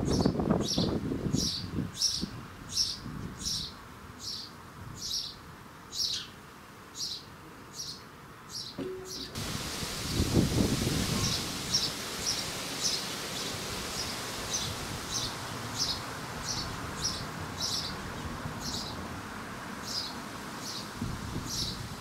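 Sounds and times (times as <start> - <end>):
sparrow chirping: 0.0 - 6.4, 7.0 - 9.4, 14.0 - 19.0, 19.8 - 20.9
steady hiss: 8.8 - 22.0.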